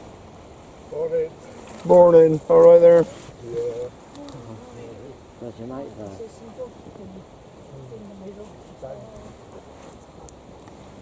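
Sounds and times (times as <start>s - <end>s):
outdoor breeze: 0.0s - 11.0s
faint voices talking: 0.9s - 10.6s.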